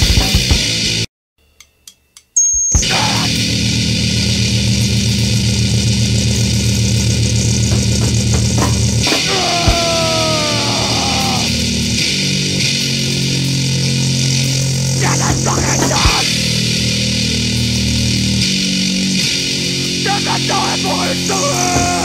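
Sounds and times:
distorted hardcore punk riffing: 0:00.0 - 0:01.1, 0:02.8 - 0:22.0.

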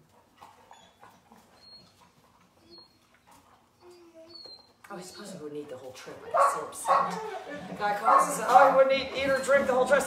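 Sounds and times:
puppy whining: 0:00.4 - 0:05.6, 0:06.4 - 0:07.5
puppy yipping: 0:00.7 - 0:05.4.

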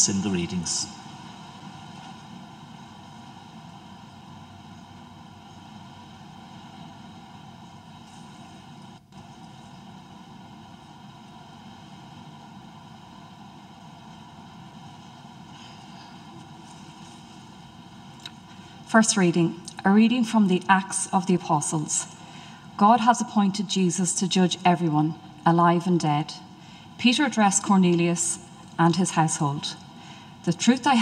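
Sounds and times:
low sound system hiss: 0:00.0 - 0:31.0.

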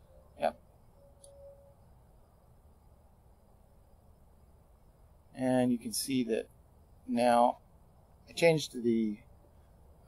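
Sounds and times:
brief faint tone: 0:00.0 - 0:01.9.

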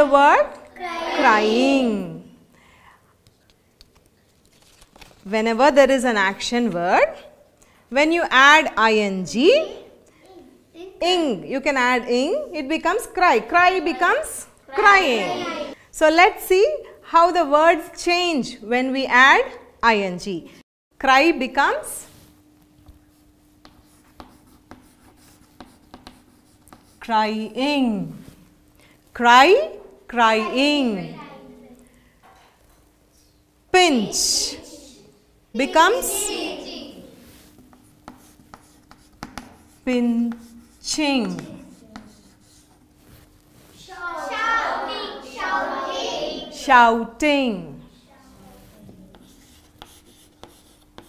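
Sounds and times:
chalk writing on chalkboard: 0:22.8 - 0:27.1, 0:37.2 - 0:43.3, 0:48.3 - 0:51.0.

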